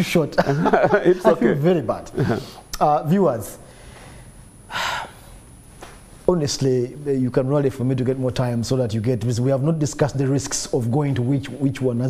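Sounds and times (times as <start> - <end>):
man's sharp intake of breath: 2.2 - 2.7, 3.6 - 5.4.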